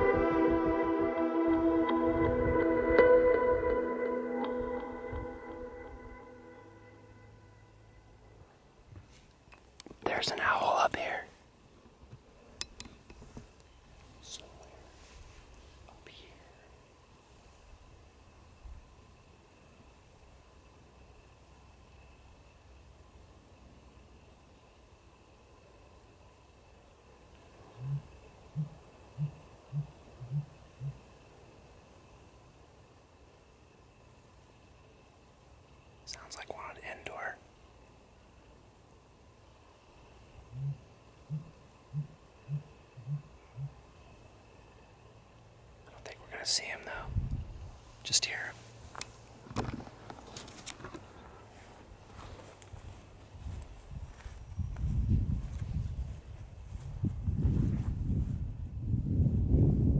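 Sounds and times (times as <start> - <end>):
faint steady high tone: 0.0 - 8.9
person whispering: 10.0 - 11.4, 14.2 - 15.0, 15.8 - 16.8, 36.1 - 37.5, 45.9 - 47.2, 48.0 - 48.7
bird hooting: 27.7 - 31.1, 40.5 - 43.8.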